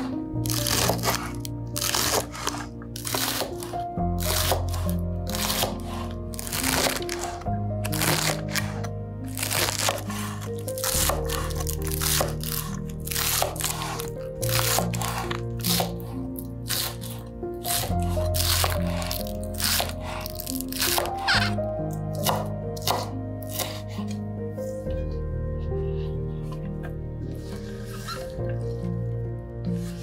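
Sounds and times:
knife chopping on wooden board: 0.0s - 8.8s, 9.4s - 14.0s, 17.8s - 21.5s, 22.2s - 23.8s
background music: 0.0s - 30.0s.

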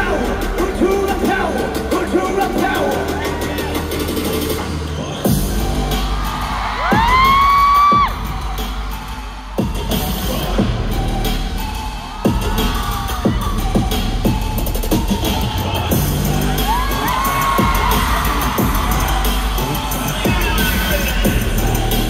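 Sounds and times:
crowd cheering and screaming: 0.0s - 22.0s
loud live concert music: 0.0s - 22.0s.

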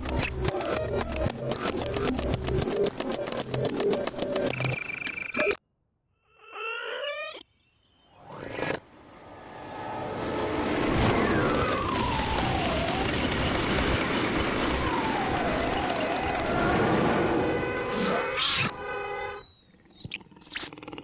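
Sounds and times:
high-speed train rushing: 8.9s - 15.6s, 16.3s - 17.6s.

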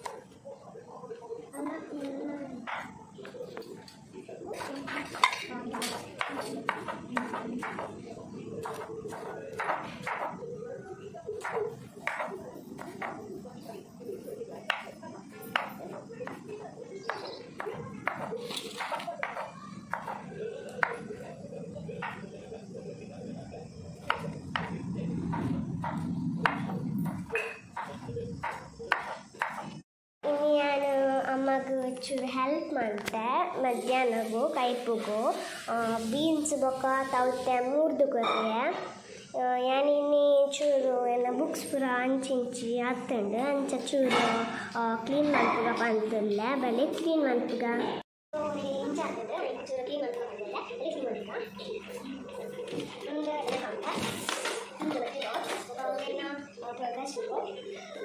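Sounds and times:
knife chopping on wooden board: 27.8s - 29.8s.

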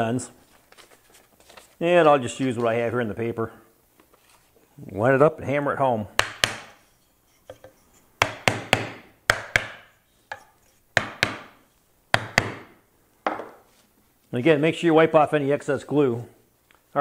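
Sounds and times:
mallet striking wood: 6.2s - 6.8s, 7.5s - 13.6s.

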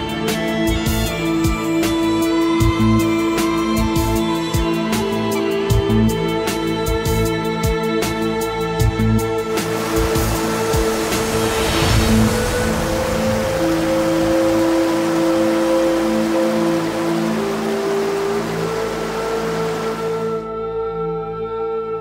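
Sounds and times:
stream rushing over boulders: 9.5s - 20.4s
calm music of held tones: 9.5s - 22.0s.

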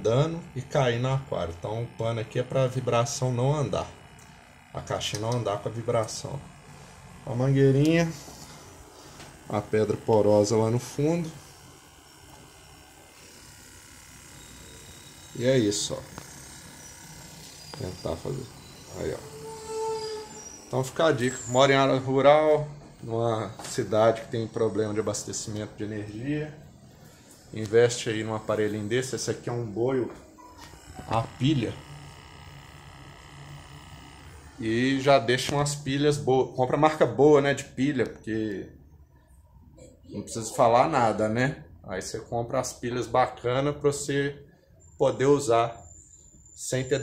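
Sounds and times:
aquarium air pump buzzing: 0.0s - 39.8s.

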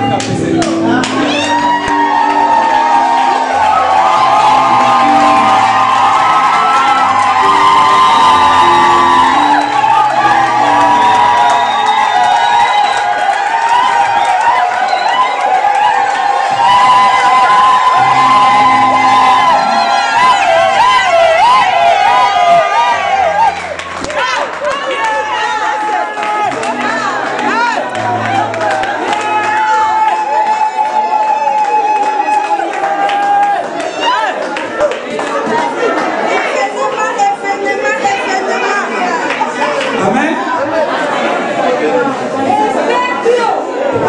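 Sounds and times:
bass line: 0.0s - 12.8s, 16.4s - 24.3s, 26.5s - 29.1s
congregation shouting and cheering: 0.0s - 44.0s.

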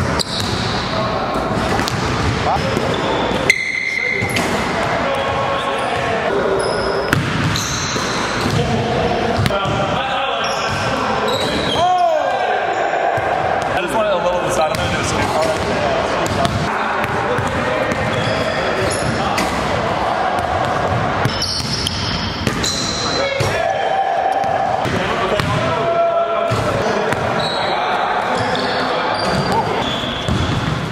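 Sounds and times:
voices echoing in a hall: 0.0s - 30.9s.

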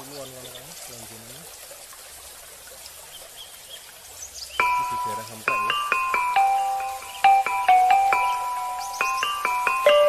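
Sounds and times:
faint outdoor hiss: 0.0s - 10.0s
glockenspiel background music: 4.6s - 10.0s.

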